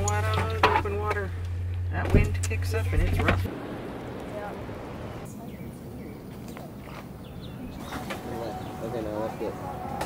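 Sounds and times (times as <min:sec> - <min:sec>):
bird chirps: 0:05.3 - 0:10.0.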